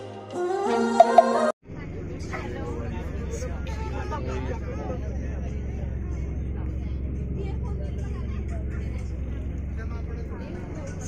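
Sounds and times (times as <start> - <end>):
bus engine drone: 0.4 - 11.0
faint passenger chatter: 1.7 - 11.0.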